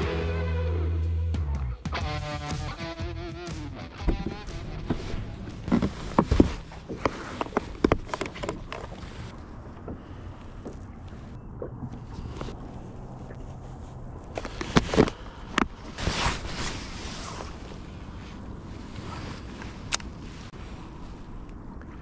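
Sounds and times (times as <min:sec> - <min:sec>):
music: 0:00.0 - 0:05.8.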